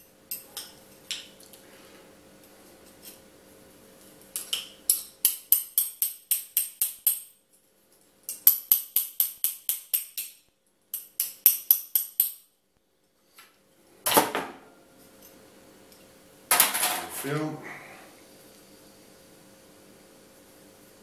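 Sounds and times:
small hammer tapping metal: 0:04.4 - 0:07.4, 0:08.3 - 0:12.5.

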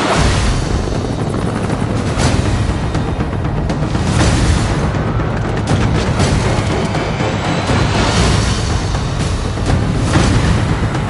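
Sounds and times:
helicopter rotors beating: 0:00.0 - 0:11.0
trailer score music: 0:00.0 - 0:11.0.

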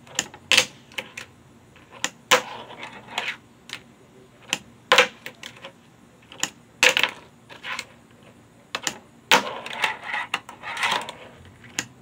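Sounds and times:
fingerboard rolling and scraping: 0:01.9 - 0:03.4, 0:09.3 - 0:11.5.

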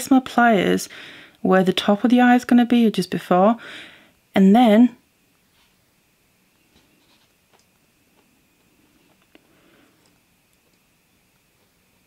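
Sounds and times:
soft rubbing: 0:05.4 - 0:06.0, 0:06.6 - 0:07.6.

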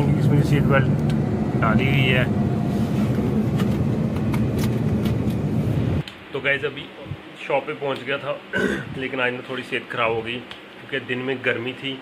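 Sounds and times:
car engine and tyre rumble: 0:00.0 - 0:06.0.

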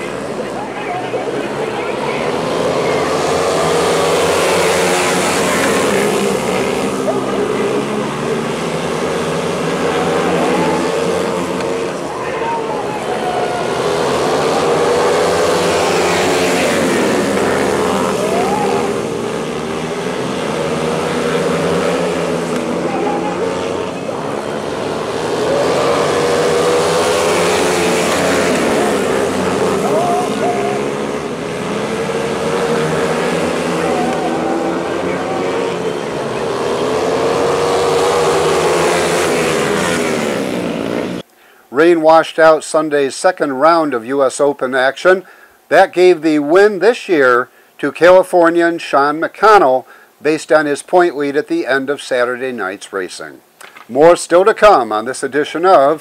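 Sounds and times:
motorcycles racing: 0:00.0 - 0:41.9.

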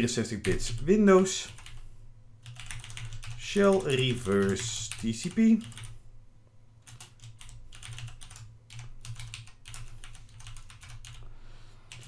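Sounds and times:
typing on computer keyboard: 0:01.5 - 0:01.8, 0:02.4 - 0:06.0, 0:06.8 - 0:11.2.

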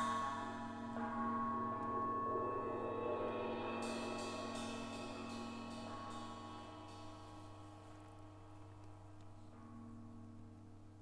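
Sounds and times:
gong ringing: 0:00.0 - 0:08.6
light metallic strokes: 0:00.0 - 0:08.9.

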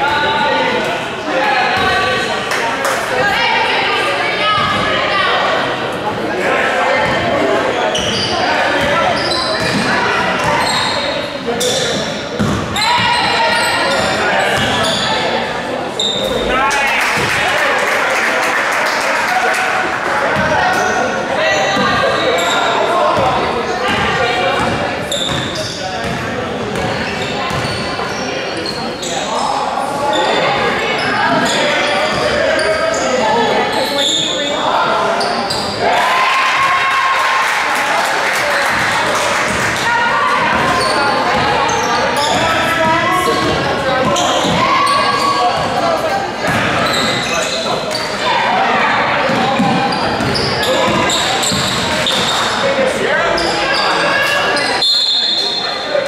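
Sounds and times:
players and spectators calling out: 0:00.0 - 0:56.0
sneaker squeaks: 0:07.0 - 0:15.3, 0:15.9 - 0:16.5, 0:20.7 - 0:23.3, 0:23.9 - 0:35.8, 0:40.4 - 0:48.3, 0:49.3 - 0:56.0.

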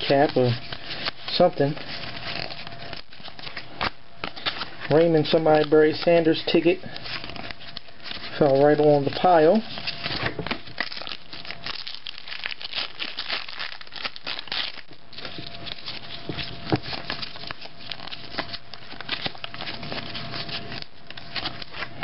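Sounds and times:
cards being shuffled: 0:00.0 - 0:22.0
wrapper crinkling and tearing: 0:00.0 - 0:22.0.

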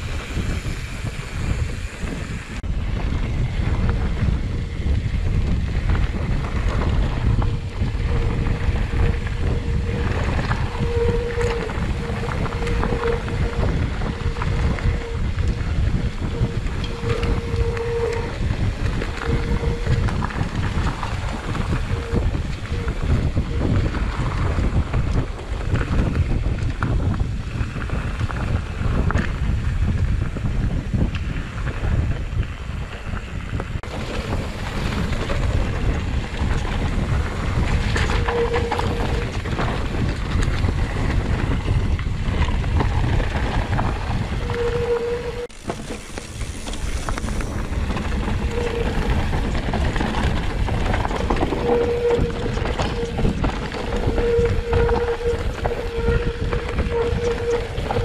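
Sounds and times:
tyres rolling over dirt trail: 0:00.0 - 0:58.0
wind buffeting microphone: 0:00.0 - 0:58.0.

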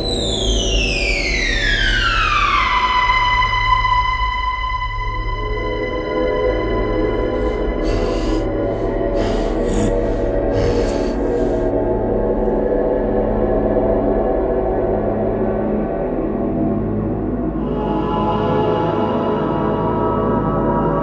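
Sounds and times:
eerie sustained drone: 0:04.8 - 0:16.0
short hissing bursts: 0:07.4 - 0:11.7.

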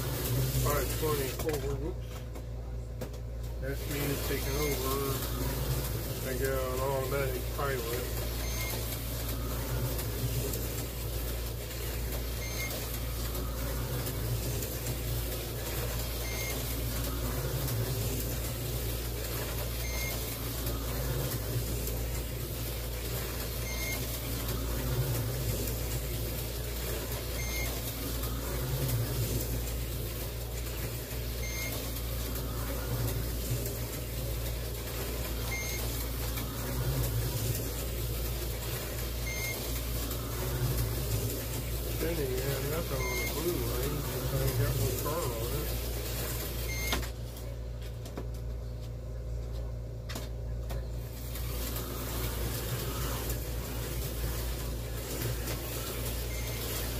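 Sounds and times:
slot car motors whirring: 0:00.0 - 0:47.5, 0:50.1 - 0:56.9
steady hum: 0:00.0 - 0:56.9.

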